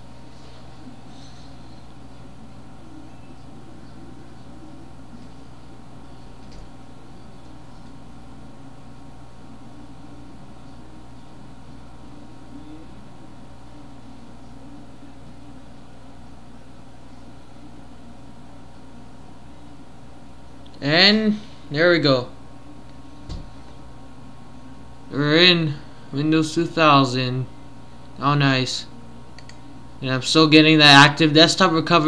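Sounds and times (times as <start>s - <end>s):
computer hum with hiss: 0.0s - 32.0s
faint click: 29.4s - 29.6s.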